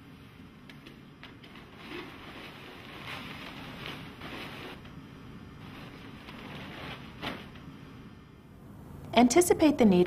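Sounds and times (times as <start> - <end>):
wrapping material rustling: 1.1 - 7.8.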